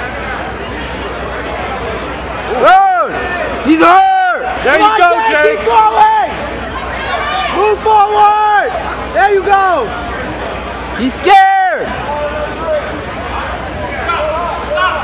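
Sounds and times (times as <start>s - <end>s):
crowd murmur: 0.0s - 15.0s
spectators yelling: 0.7s - 15.0s.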